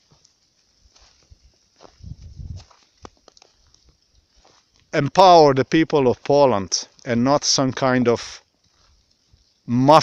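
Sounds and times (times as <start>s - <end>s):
footsteps in snow: 0.0s - 5.0s.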